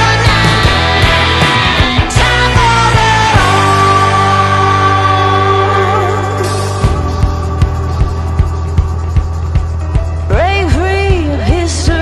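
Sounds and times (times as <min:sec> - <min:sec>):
steady kick-drum beat: 0:00.0 - 0:04.5, 0:06.3 - 0:12.0.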